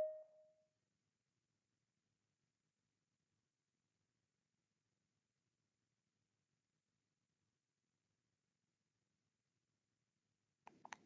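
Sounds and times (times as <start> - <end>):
notification chime: 0.0 - 0.2.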